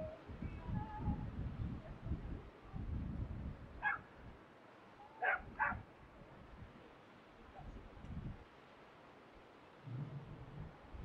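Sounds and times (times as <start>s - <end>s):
low rumble: 9.8s - 10.8s.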